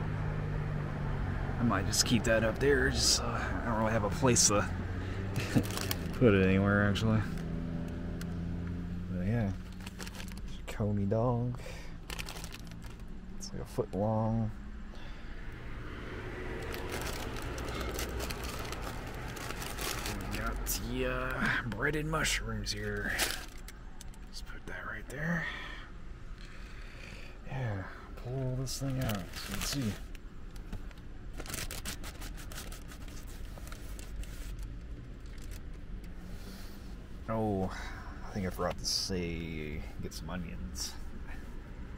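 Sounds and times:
low steady rumble: 0.0s - 41.9s
paper wrappers rustling: 5.4s - 6.4s, 9.6s - 10.5s, 12.0s - 13.1s, 16.6s - 21.5s, 22.7s - 24.2s, 28.7s - 35.7s.

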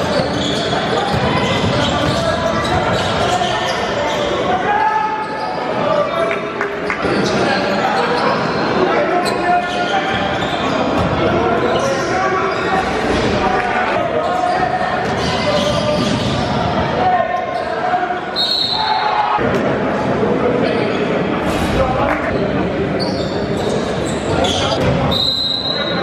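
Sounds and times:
crowd voices and shouts: 0.0s - 26.0s
basketball bouncing on court: 0.1s - 3.4s
referee's whistle: 18.3s - 19.1s, 24.4s - 26.0s.

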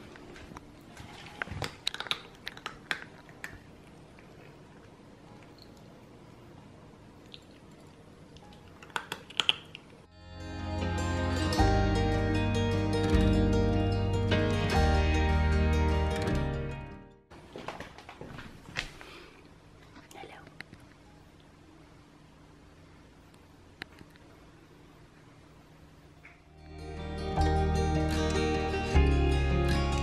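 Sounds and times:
faint steady hum: 0.0s - 16.1s, 17.3s - 30.0s
cat crunching dry kibble: 1.4s - 5.0s, 8.4s - 10.0s
soft whispered voice: 19.8s - 21.0s.

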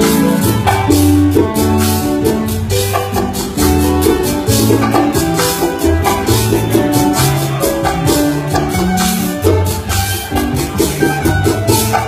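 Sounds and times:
bass line: 0.0s - 12.0s
plucked strings melody: 0.0s - 12.0s
shaken and scraped percussion: 0.0s - 12.0s.

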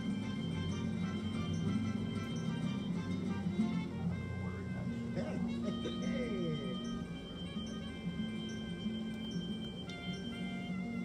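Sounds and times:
arcade game music: 0.0s - 11.0s.

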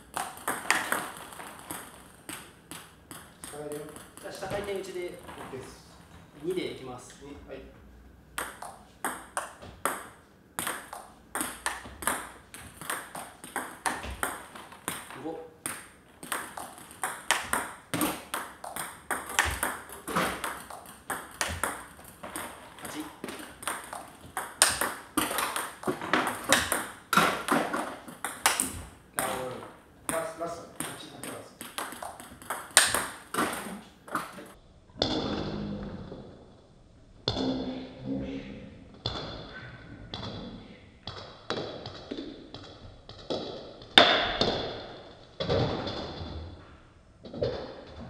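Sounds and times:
ping pong ball hitting paddles: 0.0s - 5.5s, 8.4s - 35.2s, 41.0s - 46.2s.

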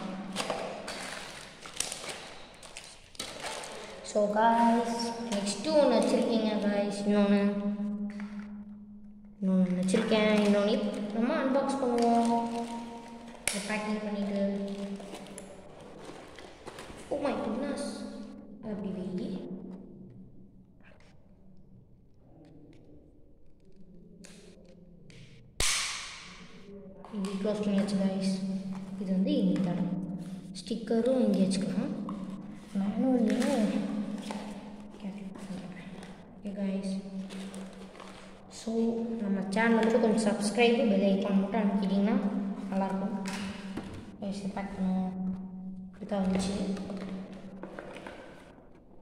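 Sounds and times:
person speaking: 0.0s - 8.2s, 9.4s - 15.7s, 17.0s - 19.8s, 26.4s - 47.6s.

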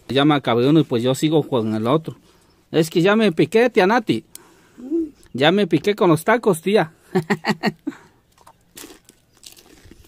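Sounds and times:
crunching of crisp food being chewed: 8.0s - 10.0s.

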